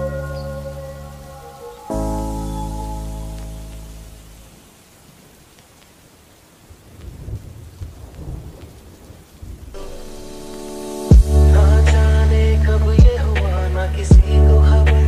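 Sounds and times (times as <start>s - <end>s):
sustained music chord: 0.0s - 4.4s, 9.8s - 14.9s
rain: 0.0s - 15.0s
rolling thunder rumbles: 6.6s - 15.0s.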